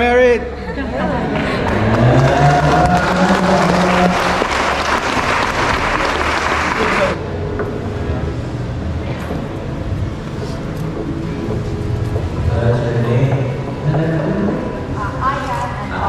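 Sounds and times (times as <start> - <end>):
murmur of voices: 0.0 - 16.0
crowd applauding and cheering: 1.2 - 7.2.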